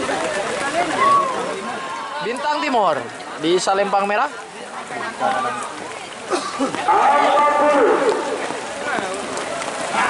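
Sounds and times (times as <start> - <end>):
people's voices: 0.0 - 10.0.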